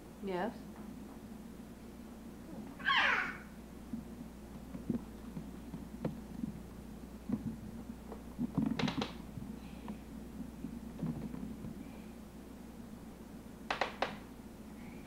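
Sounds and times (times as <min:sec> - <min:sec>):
toddler high-pitched vocal sound: 0:02.6 - 0:03.5.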